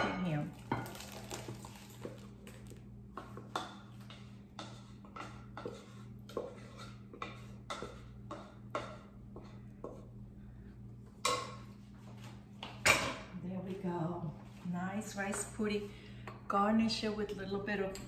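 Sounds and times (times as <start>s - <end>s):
steady low hum: 0.0s - 18.0s
spoon scraping and knocking in saucepan: 3.1s - 10.1s.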